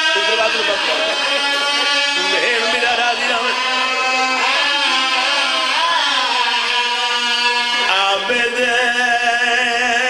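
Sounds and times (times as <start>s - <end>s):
person singing recitation: 0.0s - 10.0s.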